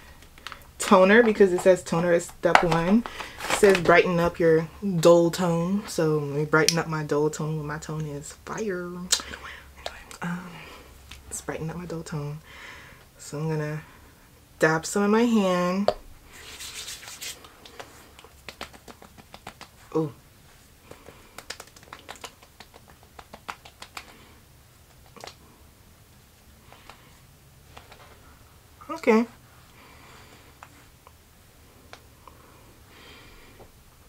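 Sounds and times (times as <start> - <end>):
hands patting skin: 0.2 - 4.2, 15.9 - 19.9, 20.8 - 25.4, 26.6 - 27.1, 27.7 - 28.2
woman whispering: 9.8 - 10.7.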